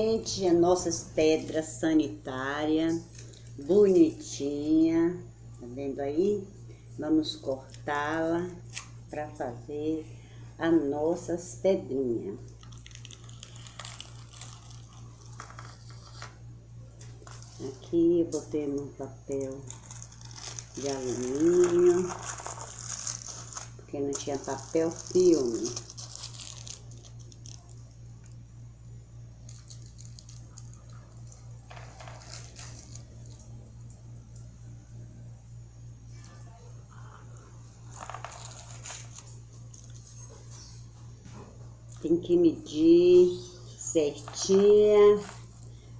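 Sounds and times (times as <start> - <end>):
steady low hum: 0.0 - 45.9
foil crinkling: 12.4 - 16.4, 17.0 - 17.9, 18.8 - 28.0, 29.4 - 33.4, 37.8 - 40.6.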